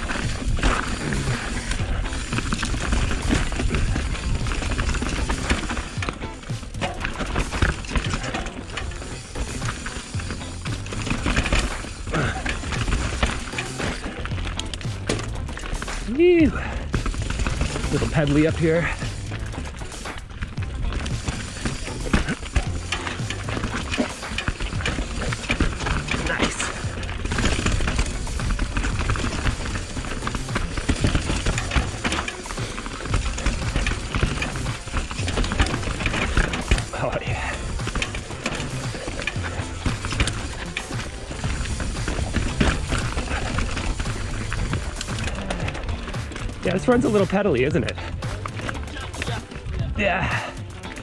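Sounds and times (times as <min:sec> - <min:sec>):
bike clicks and rattles: 0:00.0 - 0:51.0
bike tyres on dirt: 0:00.0 - 0:51.0.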